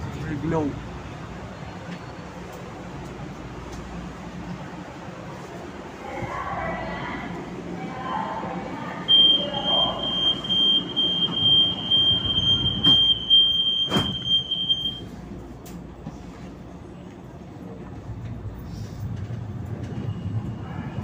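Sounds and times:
train door warning beep: 9.0s - 15.1s.

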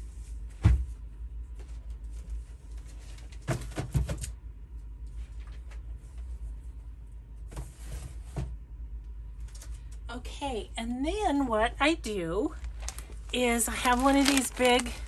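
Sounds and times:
low electrical hum: 0.0s - 15.0s
papers rustling: 12.5s - 15.0s.

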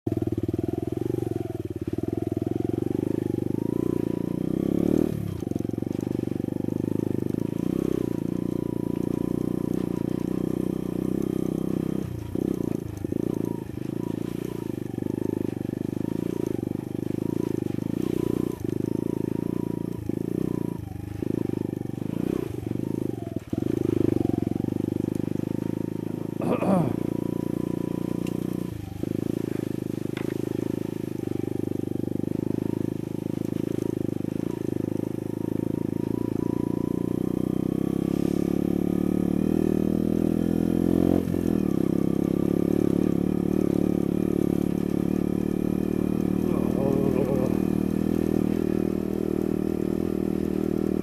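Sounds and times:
motorcycle engine running: 0.0s - 51.0s.

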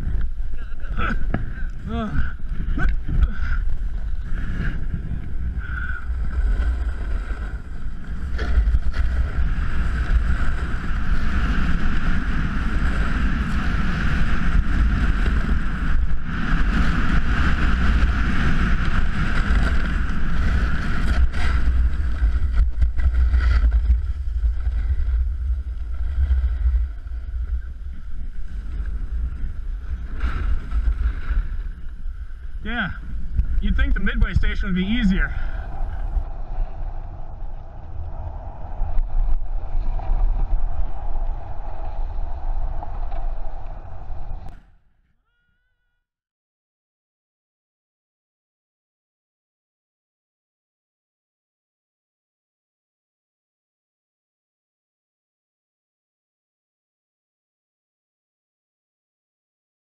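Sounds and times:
wind buffeting microphone: 0.0s - 44.6s
skis scraping on snow: 2.5s - 44.5s.

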